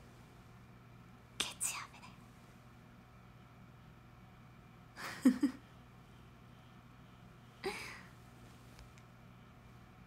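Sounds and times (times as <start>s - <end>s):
faint low hum: 0.0s - 10.0s
woman whispering breathily: 1.4s - 2.2s.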